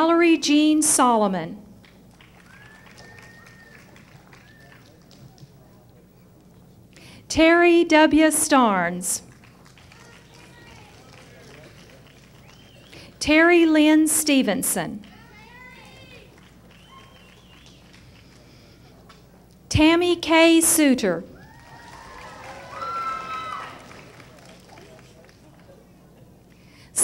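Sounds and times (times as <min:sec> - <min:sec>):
steady low hum: 0:00.0 - 0:27.0
distant voices murmuring: 0:02.0 - 0:07.1, 0:09.1 - 0:19.7
audience cheering: 0:02.2 - 0:05.4, 0:09.4 - 0:13.0, 0:15.0 - 0:18.4, 0:21.4 - 0:25.2.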